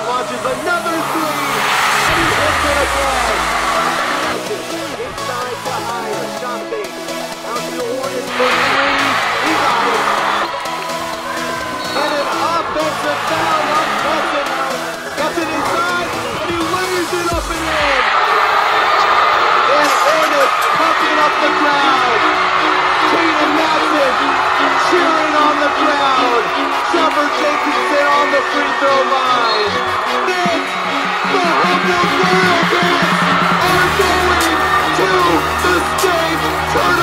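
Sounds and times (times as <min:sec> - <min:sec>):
background music: 0:00.0 - 0:37.0
crowd shouting in a gym: 0:00.0 - 0:37.0.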